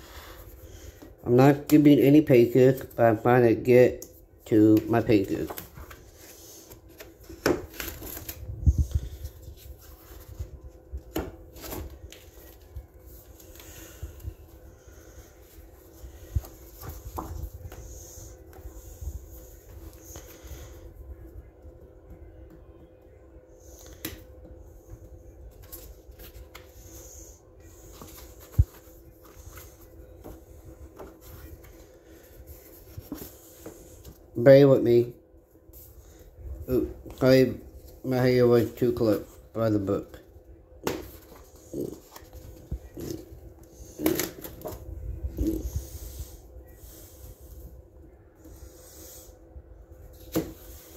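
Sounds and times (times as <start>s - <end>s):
faint steady hum: 0.0s - 50.9s
paper pages rustling: 4.7s - 14.2s.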